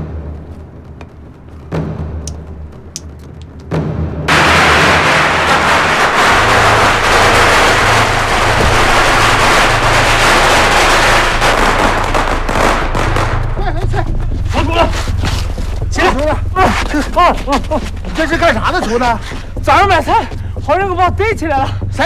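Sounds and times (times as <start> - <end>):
firecrackers popping: 1.7 - 13.9.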